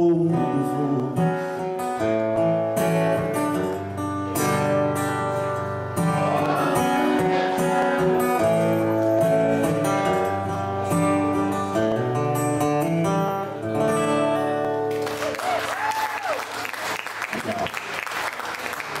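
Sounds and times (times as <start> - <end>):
acoustic guitar playing: 0.0 - 15.4
audience applause and cheering: 14.9 - 19.0.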